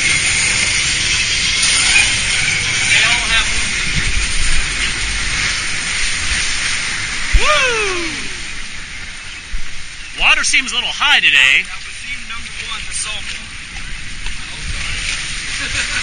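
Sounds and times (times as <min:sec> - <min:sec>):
water rushing in flume trough: 0:00.0 - 0:16.0
person calling out: 0:07.4 - 0:08.4.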